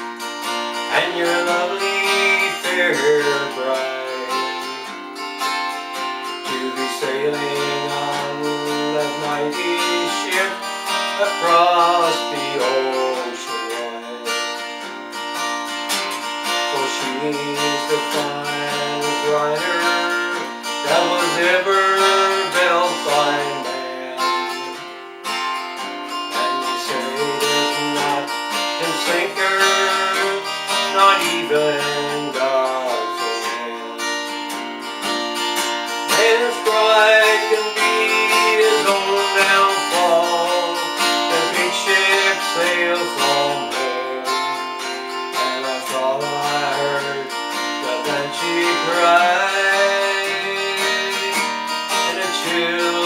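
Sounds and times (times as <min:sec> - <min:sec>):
acoustic guitar strumming: 0:00.0 - 0:53.0
person singing: 0:00.8 - 0:05.6, 0:06.3 - 0:14.8, 0:16.5 - 0:25.2, 0:25.8 - 0:53.0.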